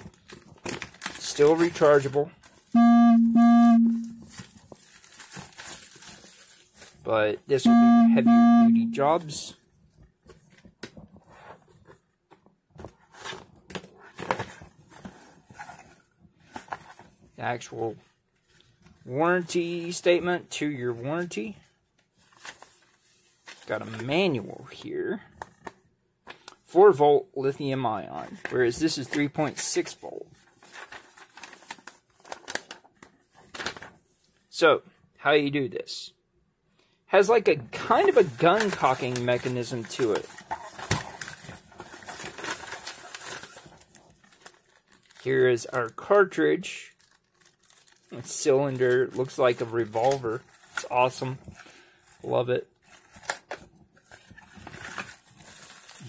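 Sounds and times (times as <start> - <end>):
paper rustling and crackling: 0.0 - 2.7, 4.1 - 7.1, 12.8 - 17.4, 22.1 - 24.2, 28.2 - 34.4, 37.9 - 45.8, 47.0 - 56.0
plastic shrink-wrap crinkling: 0.0 - 2.8, 4.1 - 7.1, 22.1 - 24.1, 30.3 - 34.4, 37.8 - 46.0, 46.9 - 56.0
humming tones: 2.8 - 4.2.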